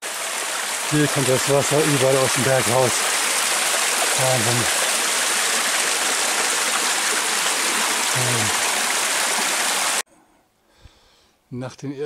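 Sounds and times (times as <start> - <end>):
water splashing onto stones: 0.0 - 10.0.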